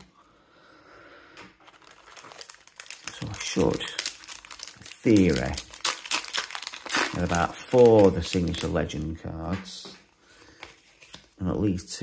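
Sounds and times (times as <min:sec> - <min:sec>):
card pack rustling: 0:01.6 - 0:09.2.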